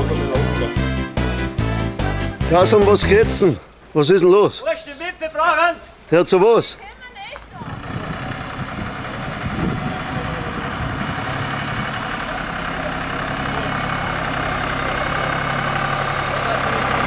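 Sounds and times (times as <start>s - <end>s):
tractor engine running: 0.0s - 3.9s, 7.5s - 17.0s.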